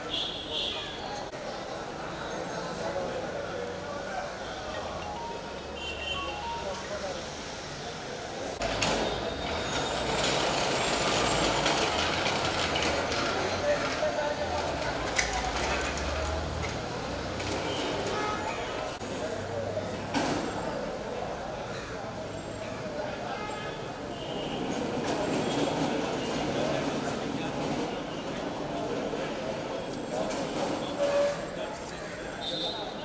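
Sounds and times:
busy street rumble: 0:00.0 - 0:33.0
crowd noise: 0:00.0 - 0:33.0
traffic noise: 0:00.0 - 0:33.0.

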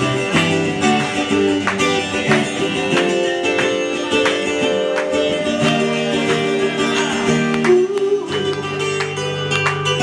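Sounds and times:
twelve-string acoustic guitar strumming: 0:00.0 - 0:10.0.

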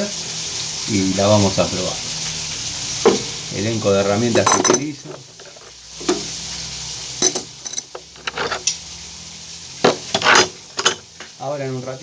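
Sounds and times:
metal tools clinking: 0:04.4 - 0:05.7, 0:07.2 - 0:08.6, 0:10.1 - 0:11.0.

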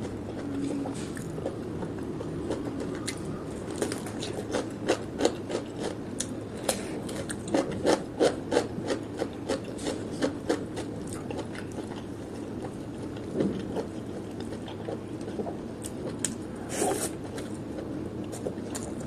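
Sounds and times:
crisp crunching of cucumber: 0:02.2 - 0:06.4.

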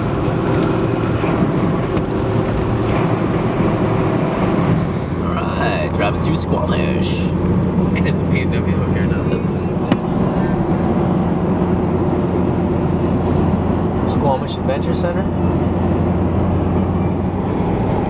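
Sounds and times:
truck engine and tyre noise: 0:00.0 - 0:18.0.

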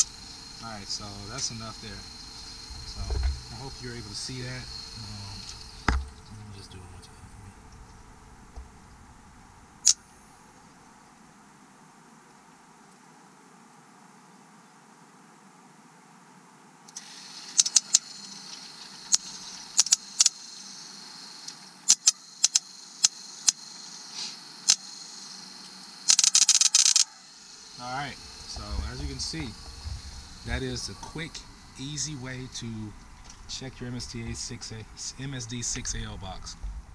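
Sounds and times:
steady high whine: 0:00.0 - 0:11.6, 0:16.9 - 0:36.9
sparks cracking across a gap: 0:16.9 - 0:20.5, 0:21.4 - 0:25.2, 0:26.0 - 0:27.5.

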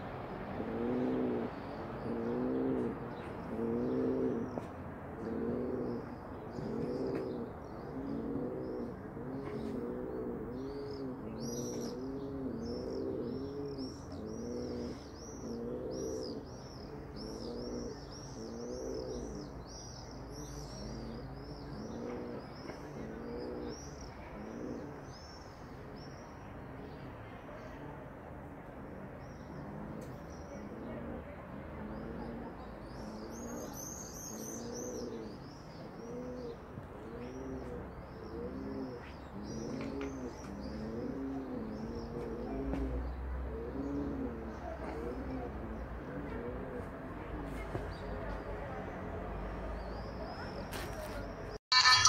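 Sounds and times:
pigeon cooing: 0:00.0 - 0:25.2, 0:29.5 - 0:47.0
small birds chirping: 0:51.7 - 0:52.0.

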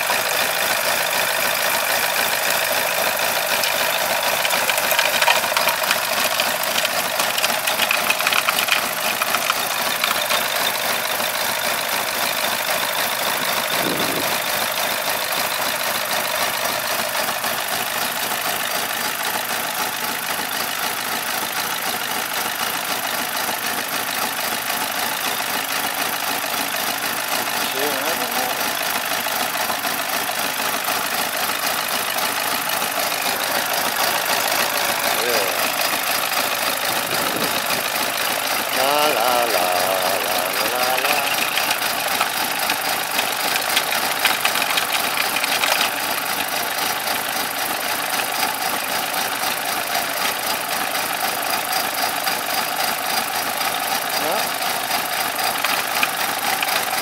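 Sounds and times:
car engine idling: 0:00.0 - 0:57.0
water pouring from hose: 0:03.3 - 0:10.7, 0:40.4 - 0:46.4.

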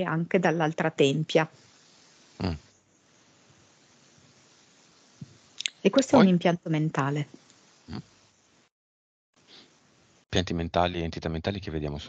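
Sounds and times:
person murmuring mm: 0:02.4 - 0:02.6, 0:10.4 - 0:12.0.

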